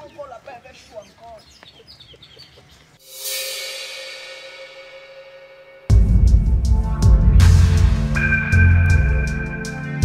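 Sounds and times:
cymbal-like crash: 3.0s - 9.9s
steady held tone: 3.0s - 10.0s.

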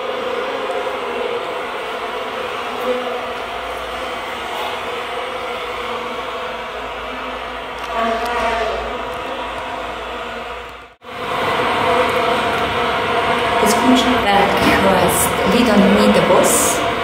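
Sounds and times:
chant-like drone: 0.0s - 17.0s
loud steady sound: 0.0s - 17.0s.

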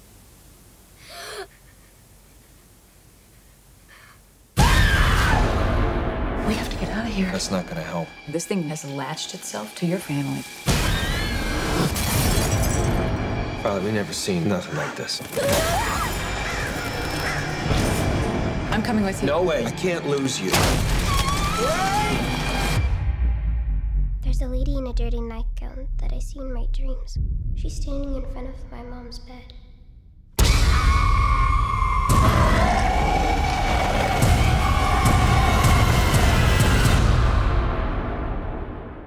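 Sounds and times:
deep rumble: 23.0s - 30.9s.

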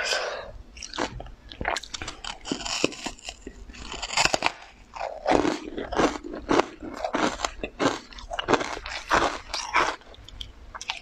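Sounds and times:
close-miked chewing: 0.8s - 11.0s.

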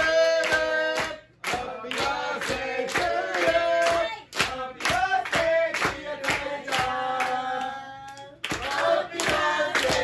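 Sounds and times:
hand clapping: 0.0s - 10.0s
voices singing: 0.0s - 10.0s.

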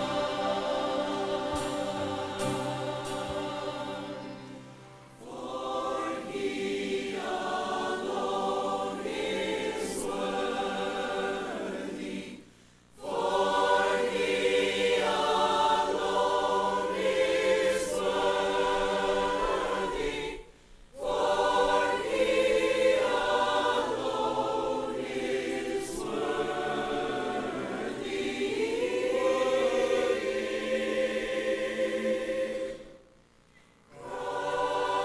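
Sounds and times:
choir singing a hymn: 0.0s - 33.1s, 33.9s - 35.0s.

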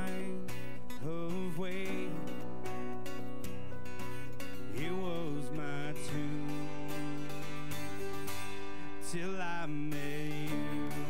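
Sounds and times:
acoustic guitar: 0.0s - 11.0s
keyboard: 0.0s - 11.0s.

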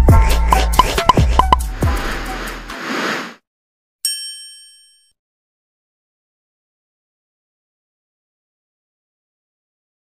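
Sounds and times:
intro music: 0.0s - 2.8s
bright ding: 4.0s - 5.1s.

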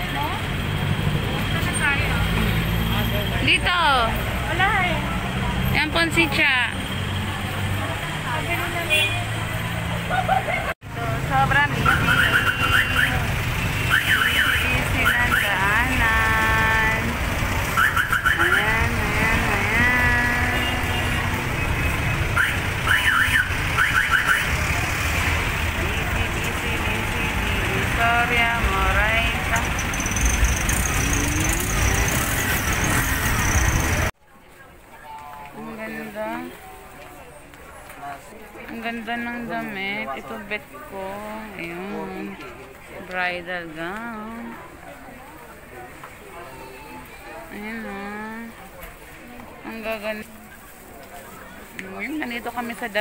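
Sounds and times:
low traffic rumble: 0.0s - 53.0s
voices of passers-by: 0.0s - 53.0s
vehicle alarm chirps and tones: 11.8s - 13.2s, 13.8s - 15.6s, 21.6s - 24.5s.

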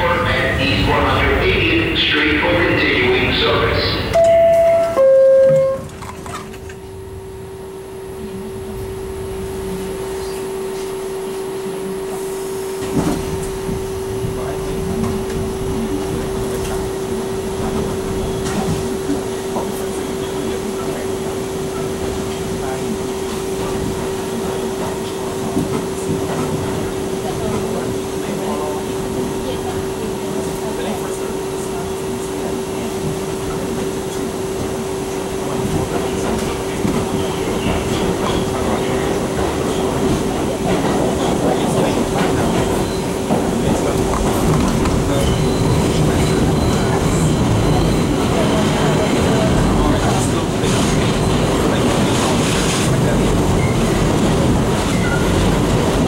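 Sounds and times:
subway rail running noise: 0.0s - 56.0s.

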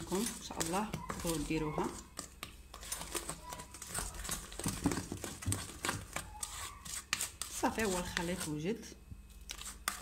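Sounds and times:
spatula scraping metal bowl: 0.0s - 8.9s, 9.5s - 10.0s.

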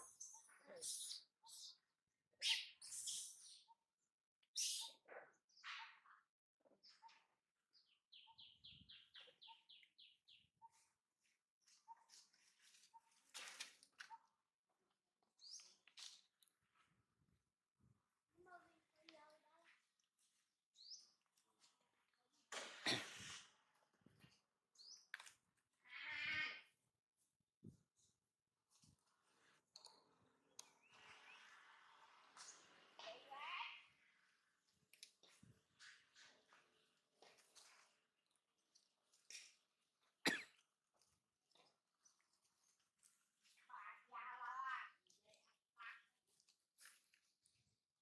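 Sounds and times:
short sharp cough: 22.6s - 23.4s, 40.2s - 40.6s.

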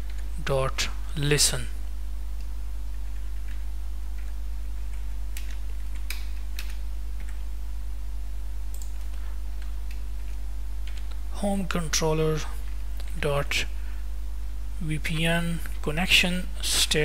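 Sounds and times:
low electrical hum: 0.0s - 17.0s.

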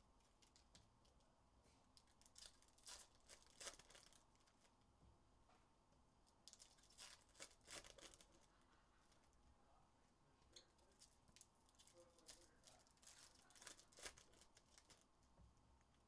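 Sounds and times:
foil wrapper crinkling and tearing: 2.0s - 4.7s, 6.4s - 8.5s, 10.9s - 15.1s.

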